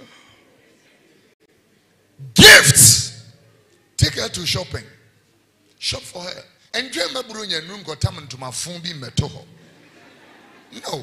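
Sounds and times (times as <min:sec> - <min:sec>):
man's loud vocal burst: 0:02.2 - 0:03.2.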